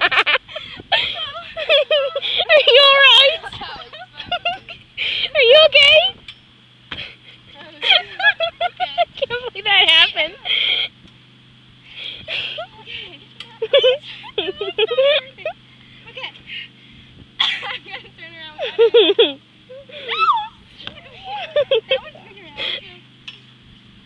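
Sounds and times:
girls laughing and squealing: 0.0s - 6.2s, 7.0s - 11.0s, 12.2s - 16.8s, 17.4s - 23.0s.

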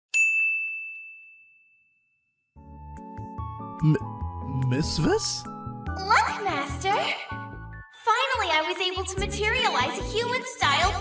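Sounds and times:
bright ding: 0.1s - 2.4s.

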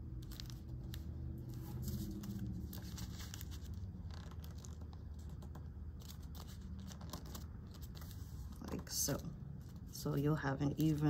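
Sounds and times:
paper being folded and creased: 0.0s - 10.0s.

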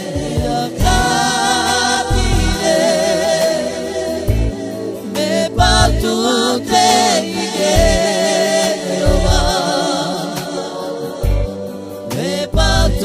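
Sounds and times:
person singing with vibrato: 0.0s - 13.0s
pop instrumental backing: 0.0s - 13.0s.

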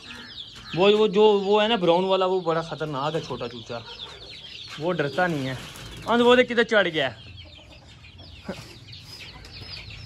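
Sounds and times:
chicks peeping: 0.0s - 10.0s.

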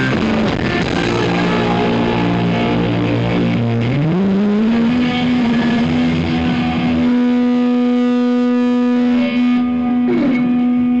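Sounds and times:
distorted electric guitars sustained note: 0.0s - 11.0s
sliding guitar note dropping: 0.0s - 11.0s.

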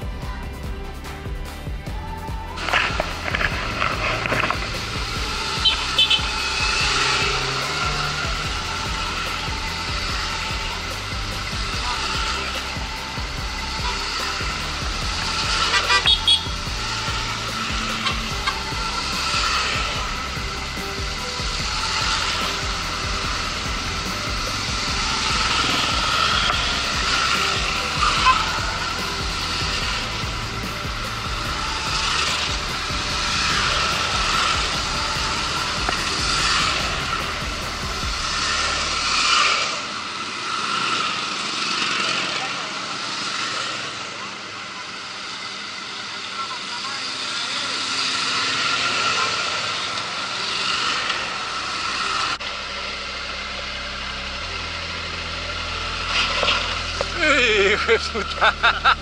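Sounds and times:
motorcycles riding past: 0.0s - 59.0s.

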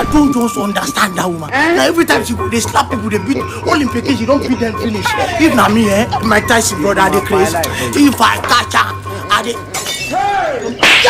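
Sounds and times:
sharp crash: 10.8s - 11.0s.

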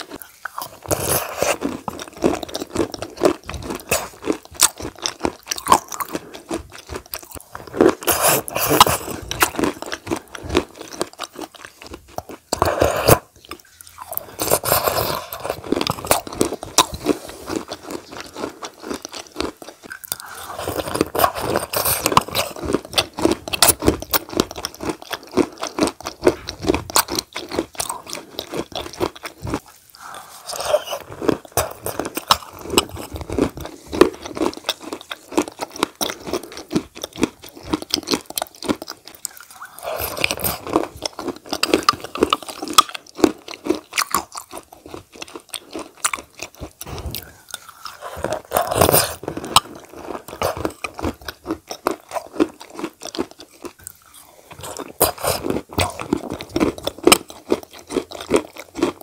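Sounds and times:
chewing and mouth sounds: 0.0s - 59.0s.

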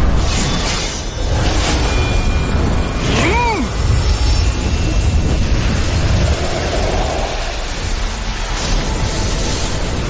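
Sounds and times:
deep rumble: 3.7s - 10.0s.

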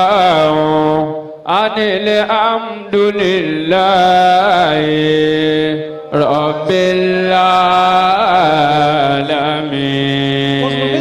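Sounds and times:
man chanting devotional praise: 0.0s - 11.0s.

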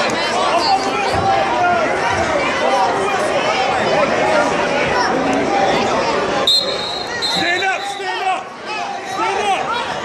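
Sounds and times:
spectators shouting: 0.2s - 10.0s
referee's whistle blast: 6.4s - 8.2s.

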